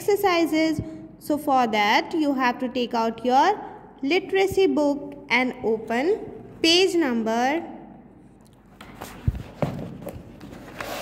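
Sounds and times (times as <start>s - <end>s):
book thumping on table: 8.8s - 10.6s
pages rustling: 8.8s - 11.0s.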